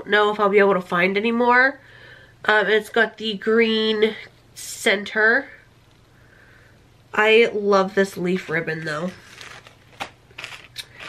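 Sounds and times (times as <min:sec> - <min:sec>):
plastic bag crinkles and clicks: 0:09.1 - 0:11.0.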